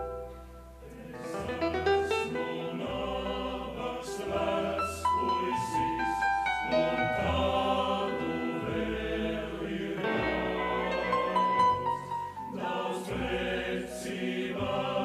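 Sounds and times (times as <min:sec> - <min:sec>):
choir singing with orchestra: 0:00.0 - 0:15.0.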